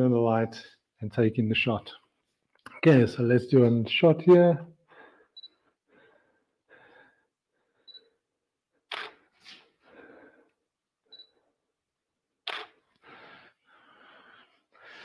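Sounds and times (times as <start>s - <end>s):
camera shutter clicks: 8.9s - 9.2s, 12.4s - 12.8s.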